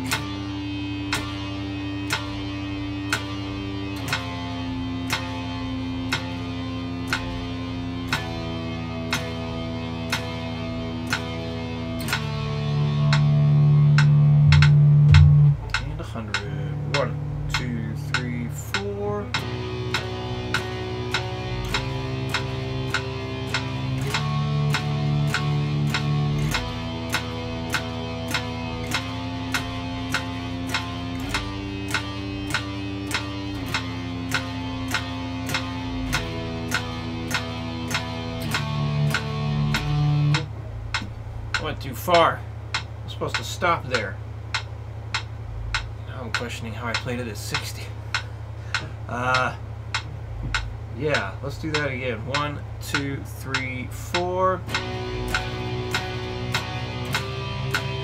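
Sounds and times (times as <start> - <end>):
electric guitar power chords: 0.0 - 58.0
metronome clicking: 0.0 - 58.0.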